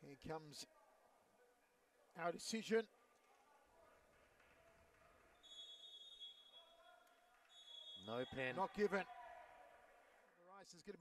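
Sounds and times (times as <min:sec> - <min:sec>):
referee's whistle blast: 0:05.4 - 0:06.8, 0:07.5 - 0:08.6.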